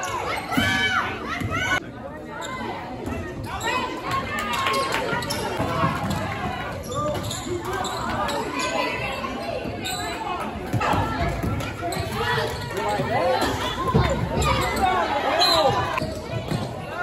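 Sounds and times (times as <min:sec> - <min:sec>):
spectators talking and calling out: 0:00.0 - 0:17.0.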